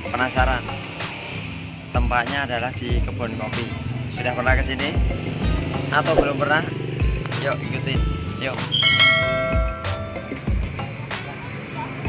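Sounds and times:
background music with steady beat: 0:00.0 - 0:12.0
bell-like chime: 0:04.2 - 0:05.8, 0:08.8 - 0:10.2.

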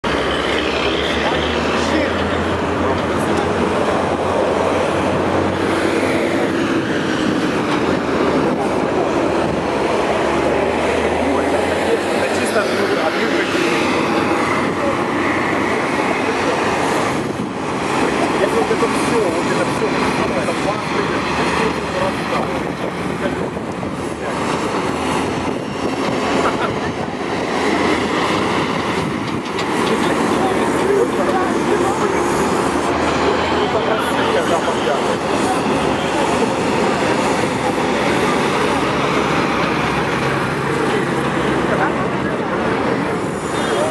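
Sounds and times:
diesel engine drone: 0:00.0 - 0:43.9.

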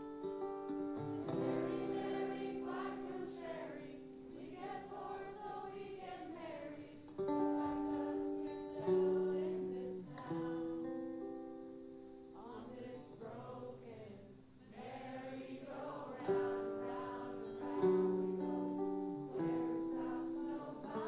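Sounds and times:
acoustic guitar chords: 0:00.0 - 0:21.0.

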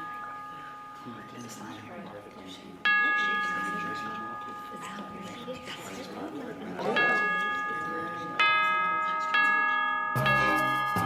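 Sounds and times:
bell-like chimes ringing: 0:00.0 - 0:11.0.

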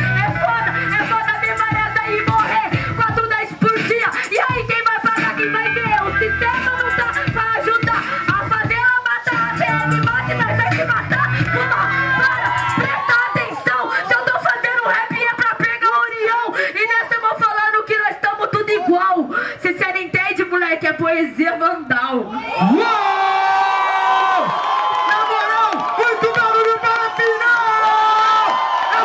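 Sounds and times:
hip-hop beat through pa: 0:00.0 - 0:16.4
woman rapping into microphone: 0:00.0 - 0:22.4, 0:25.0 - 0:29.0.

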